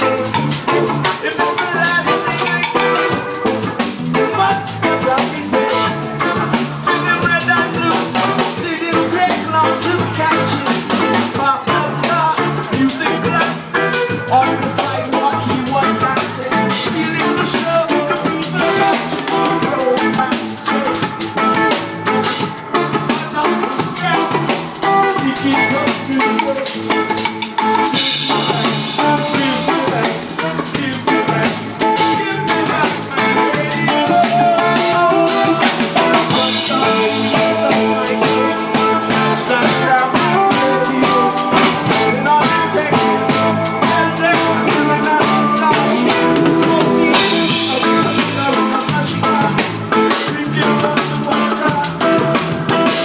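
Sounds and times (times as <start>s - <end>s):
live reggae band playing: 0.0s - 53.0s
steady drum beat: 0.0s - 53.0s.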